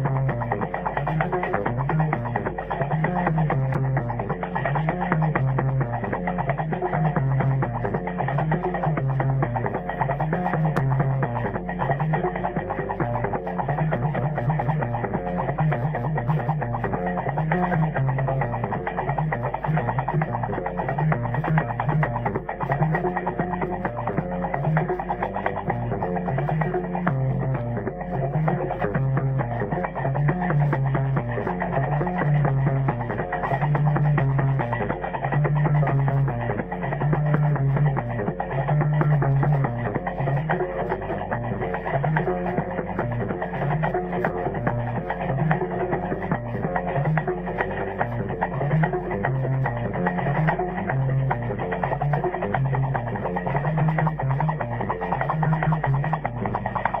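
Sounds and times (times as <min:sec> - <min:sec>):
bass lute playing low riff: 0:00.0 - 0:57.0.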